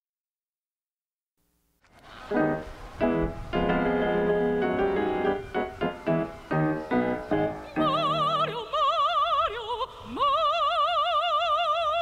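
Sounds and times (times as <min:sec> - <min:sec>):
operatic soprano singing high note: 0:06.4 - 0:12.0.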